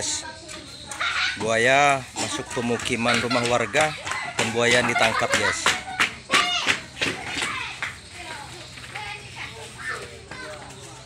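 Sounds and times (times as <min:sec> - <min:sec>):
people's voices: 0:00.0 - 0:11.0.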